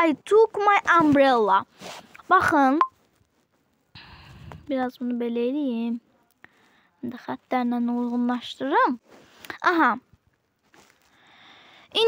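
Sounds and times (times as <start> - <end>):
person drawing breath: 3.9 - 4.7, 6.4 - 7.0, 11.0 - 11.9.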